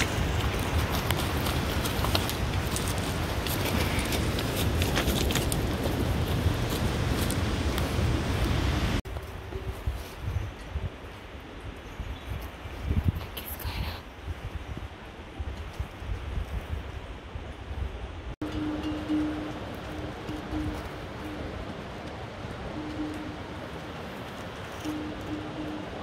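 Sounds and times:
hooves clattering over rocks: 0:00.0 - 0:10.3
wind and rustling: 0:00.0 - 0:26.0.

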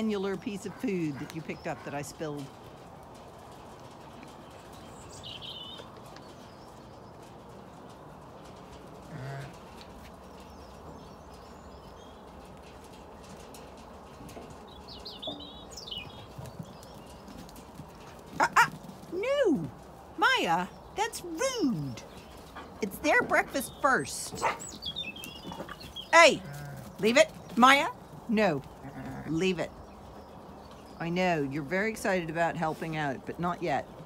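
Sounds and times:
sheep crunching food: 0:02.5 - 0:19.1
bird chirps: 0:04.8 - 0:07.1, 0:14.7 - 0:17.3, 0:23.7 - 0:26.2.

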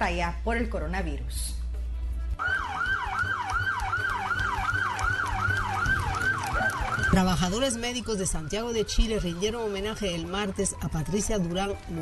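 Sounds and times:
emergency siren yelping: 0:02.4 - 0:08.8.

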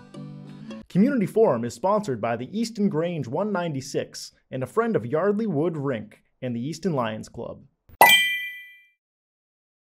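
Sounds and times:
bright chime: 0:08.0 - 0:08.9.

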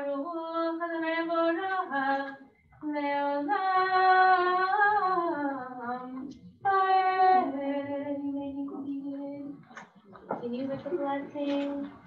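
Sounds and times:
woman singing slow prayer melody: 0:00.0 - 0:09.6, 0:10.4 - 0:12.0.

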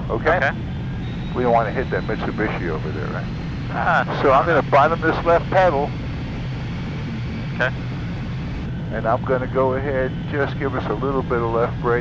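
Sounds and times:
jet engine idling: 0:00.0 - 0:12.0.

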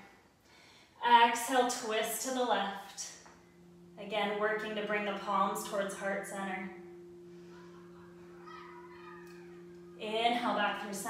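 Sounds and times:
low two-tone hum: 0:00.8 - 0:11.0
faint higher sound: 0:03.0 - 0:11.0.

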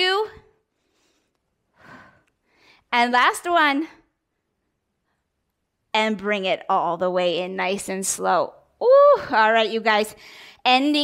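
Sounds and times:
woman breathing out: 0:00.8 - 0:02.8.

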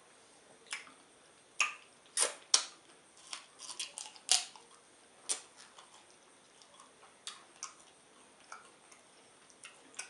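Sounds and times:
wet mouth smacks: 0:01.6 - 0:02.8.

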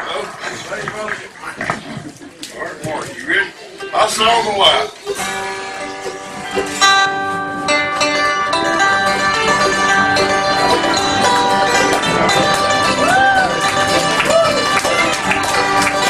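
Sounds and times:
bluegrass string band playing: 0:00.0 - 0:16.0
banjo-strung instrument: 0:02.8 - 0:16.0
acoustic guitars strumming: 0:03.8 - 0:16.0.

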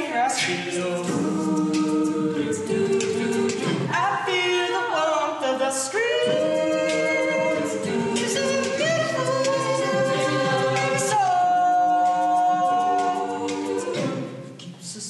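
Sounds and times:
a cappella group singing: 0:00.0 - 0:15.0.

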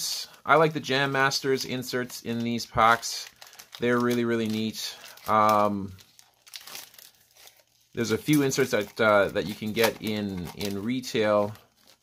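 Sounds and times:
foil wrapper crinkling: 0:00.6 - 0:12.0.

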